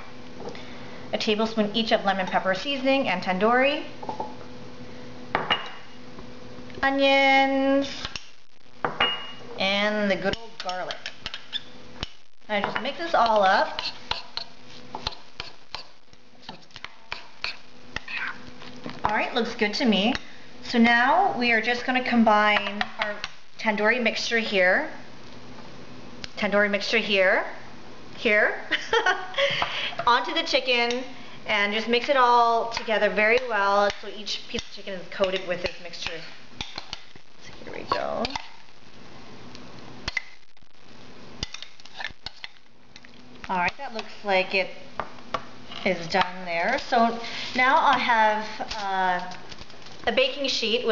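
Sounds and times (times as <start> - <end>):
metal spoon stirring in glass bowl: 13.2 - 18.4, 41.4 - 43.1.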